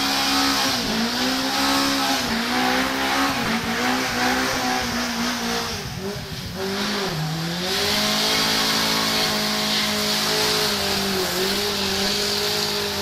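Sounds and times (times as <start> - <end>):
car engine at high revs: 0.0 - 13.0
spinning tyres hissing: 0.0 - 13.0.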